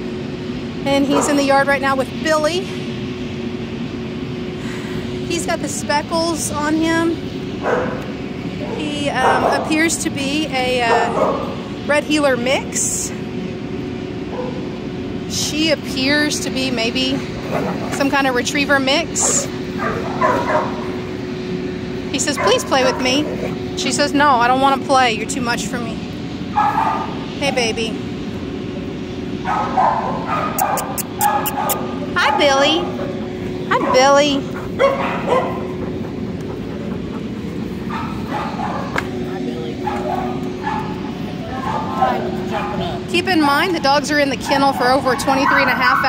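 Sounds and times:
dog whining: 19.2 - 20.9, 29.6 - 39.0.

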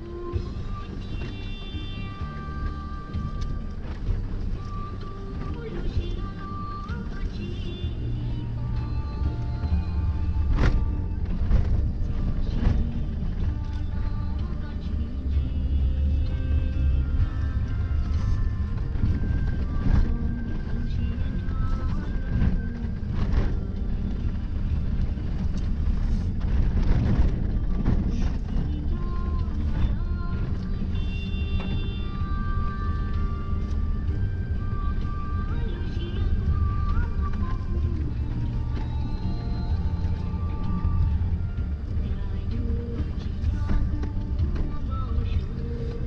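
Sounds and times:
music with singing: 0.0 - 46.0
vehicle rumbling on dirt road: 0.0 - 46.0.

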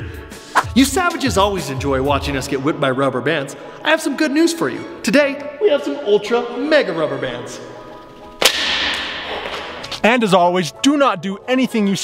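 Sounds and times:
rubber band snapping: 8.4 - 10.0.

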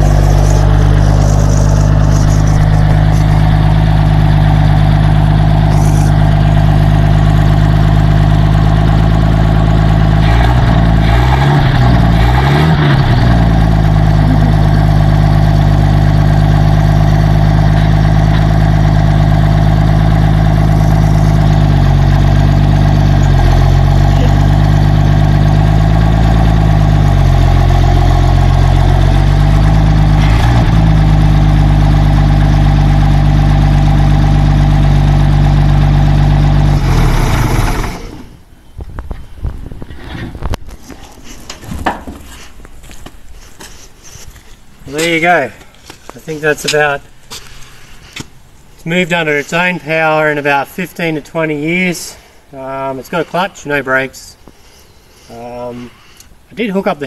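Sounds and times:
truck engine revving: 0.0 - 38.5.

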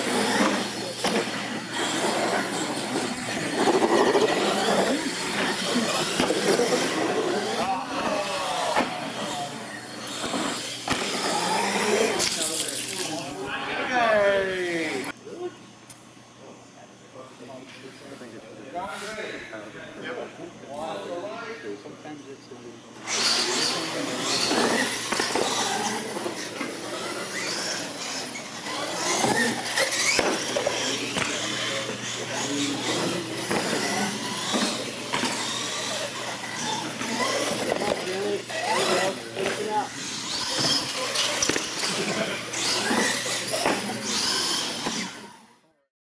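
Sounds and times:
toy truck motors whining: 0.0 - 13.5, 23.0 - 45.7
chatter of onlookers: 0.0 - 15.6, 16.3 - 45.7.

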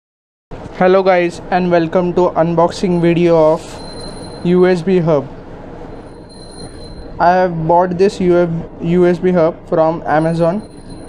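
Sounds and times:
steady background hiss: 0.6 - 6.0
man speaking: 0.8 - 3.8, 4.4 - 5.3, 7.2 - 10.6.

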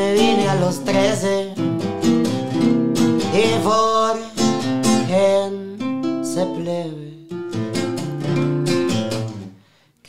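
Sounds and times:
classical guitar strumming: 0.0 - 9.5.

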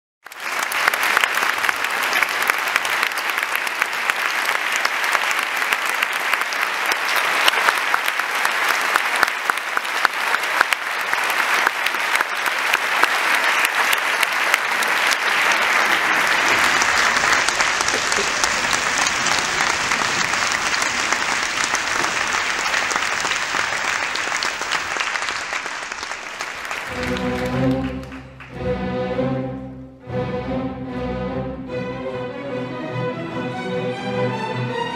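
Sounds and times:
audience applauding: 0.2 - 28.8
symphony orchestra playing: 26.5 - 34.9.

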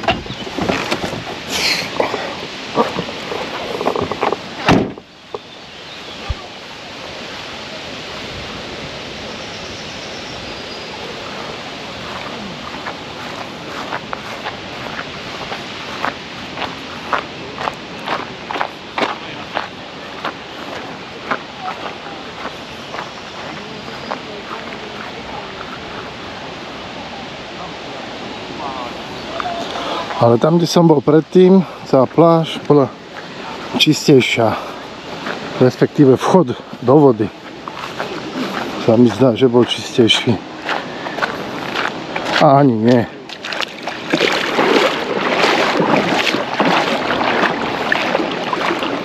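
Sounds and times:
wind-like hiss: 0.0 - 49.0
car door slamming: 4.6 - 5.1
footsteps on dry grass and sand: 10.9 - 26.2, 31.5 - 49.0.

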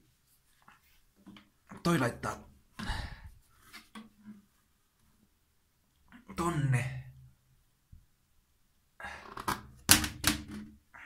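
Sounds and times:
plastic toilet seat clattering: 9.3 - 10.8.

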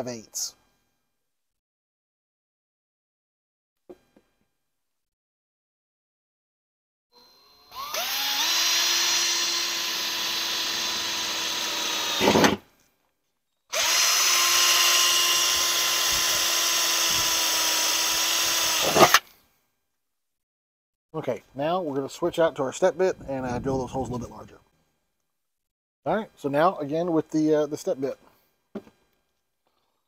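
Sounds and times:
cordless drill whining through steel: 7.1 - 12.8, 13.7 - 19.4.

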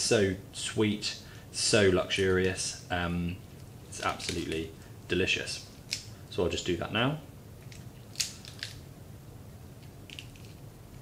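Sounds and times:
crab shell clicks and crackles: 5.8 - 6.1, 7.6 - 8.9, 9.8 - 10.7.

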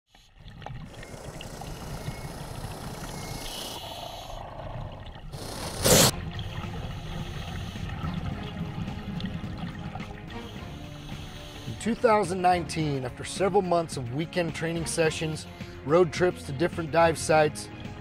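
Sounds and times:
water trickling and bubbling: 0.1 - 12.3.

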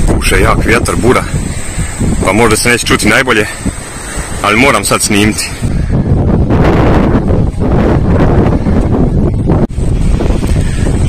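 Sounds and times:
strong wind on microphone: 0.0 - 11.0.

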